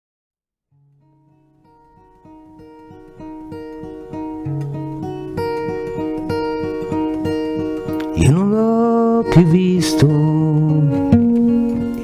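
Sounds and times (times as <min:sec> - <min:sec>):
acoustic guitar picking: 0:00.7 - 0:12.0.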